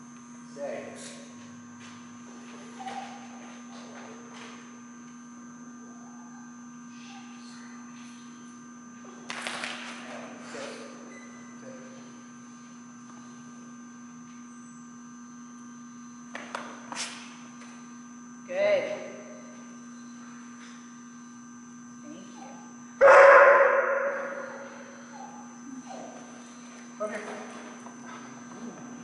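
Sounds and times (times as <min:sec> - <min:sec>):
steady electrical hum: 0:00.0 - 0:29.0
large dog barking: 0:23.0 - 0:24.6.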